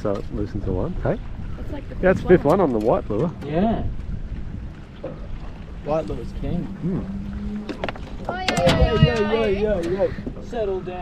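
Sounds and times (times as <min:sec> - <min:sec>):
wind rumble on microphone: 0:00.0 - 0:11.0.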